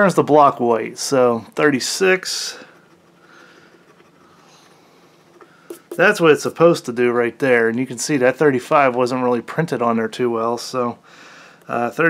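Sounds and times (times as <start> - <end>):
coin scratching a ticket: 2.3 - 6.3.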